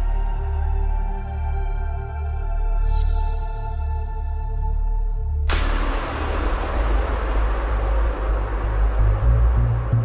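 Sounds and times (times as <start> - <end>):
steady deep bass: 3.6 - 10.0.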